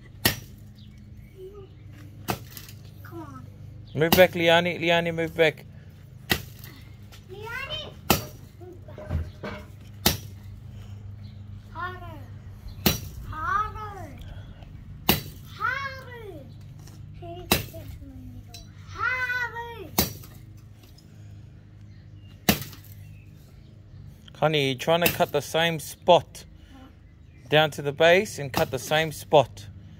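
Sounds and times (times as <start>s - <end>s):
machete chopping tree trunk: 0.2s - 0.6s, 2.2s - 2.7s, 6.2s - 6.7s, 8.1s - 8.4s, 10.0s - 10.4s, 12.8s - 13.2s, 15.0s - 15.4s, 17.5s - 17.9s, 20.0s - 20.4s, 22.4s - 23.0s
child calling out: 18.9s - 19.9s.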